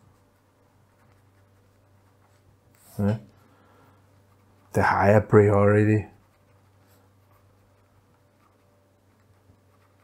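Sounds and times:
pen scratching on paper: 0.0 - 3.1, 4.0 - 10.0.

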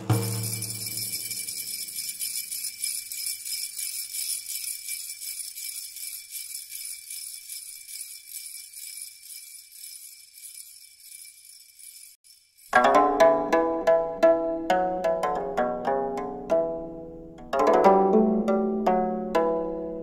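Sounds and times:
shaken metal jingles ringing: 0.0 - 13.1.

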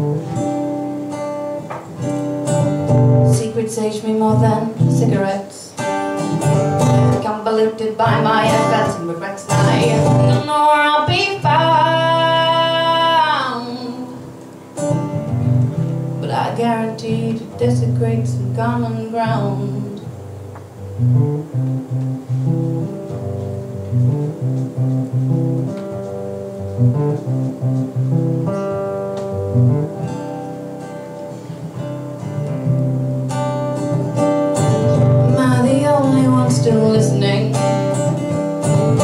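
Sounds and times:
acoustic guitar playing: 0.0 - 39.0.

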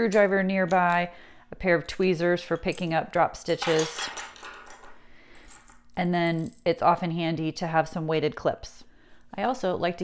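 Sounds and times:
metal tools clinking on wooden table: 2.6 - 6.7.

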